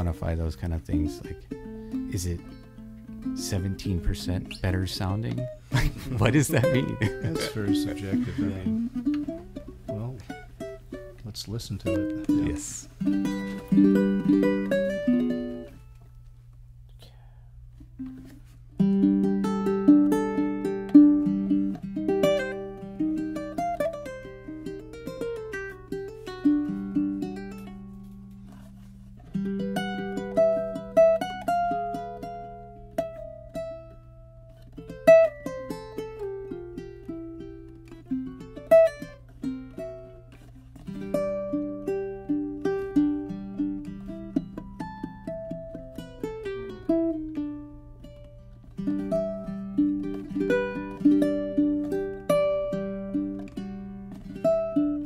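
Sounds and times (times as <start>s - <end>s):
fingerpicked ukulele: 0.0s - 16.7s, 17.8s - 55.0s.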